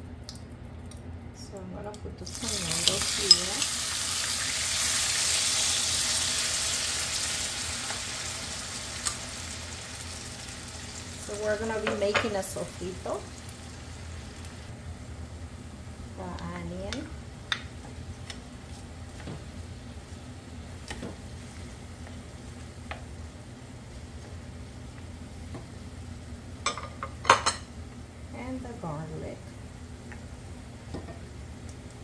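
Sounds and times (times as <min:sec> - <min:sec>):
vegetables sizzling in oil: 0:02.2 - 0:32.0.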